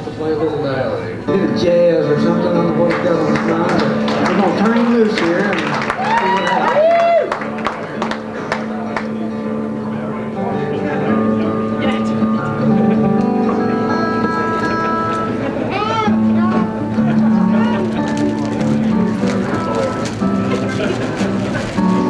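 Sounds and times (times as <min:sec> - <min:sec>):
acoustic guitar picking: 0:00.6 - 0:05.6, 0:07.4 - 0:22.0.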